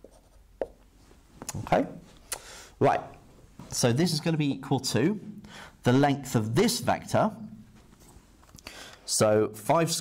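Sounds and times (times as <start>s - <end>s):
marker writing on whiteboard: 0.0s - 0.8s.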